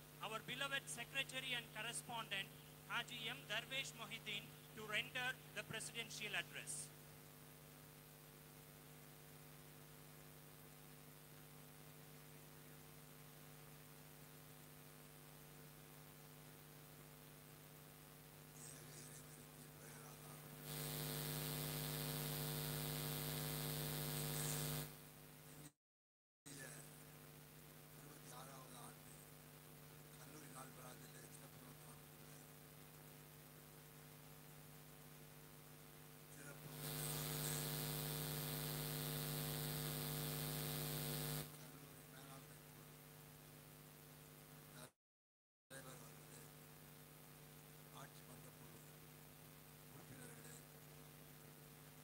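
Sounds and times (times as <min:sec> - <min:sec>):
electrical mains hum: 0:00.0 - 0:25.6, 0:26.5 - 0:44.9
loud steady hiss: 0:18.5 - 0:25.0, 0:36.4 - 0:42.5.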